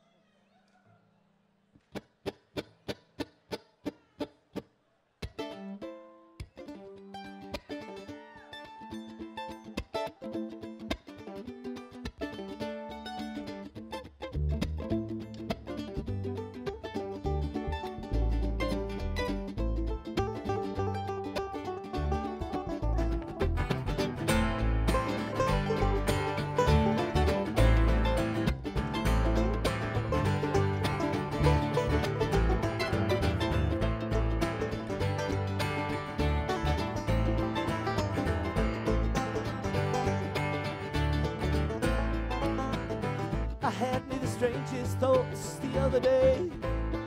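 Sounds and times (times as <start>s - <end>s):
plucked strings picking: 1.9s - 47.0s
upright bass: 12.3s - 47.0s.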